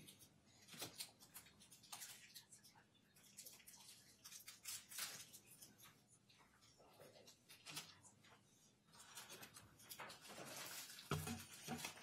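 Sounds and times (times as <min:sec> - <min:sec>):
faint rustling of paper: 0:00.0 - 0:12.0.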